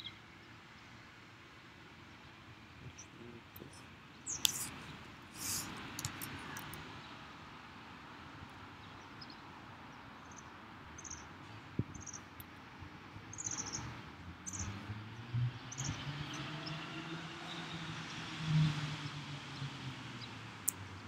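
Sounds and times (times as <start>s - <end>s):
small bird chirping: 2.9s - 6.2s, 10.2s - 11.3s, 11.9s - 12.3s, 13.3s - 14.8s.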